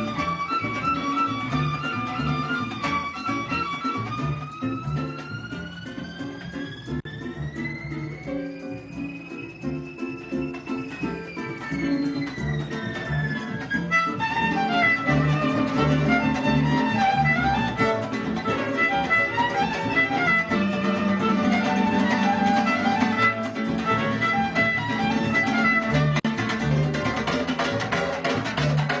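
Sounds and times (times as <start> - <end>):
violin melody: 0.0 - 28.2
small guitar strumming: 0.0 - 29.0.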